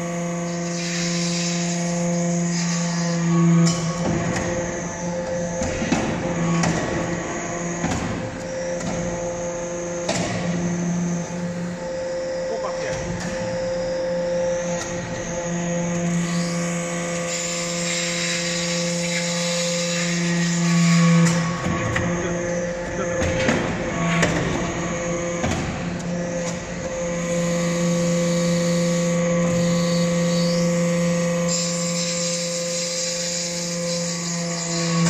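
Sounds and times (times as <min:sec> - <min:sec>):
hydraulic power unit hum: 0:00.0 - 0:35.0.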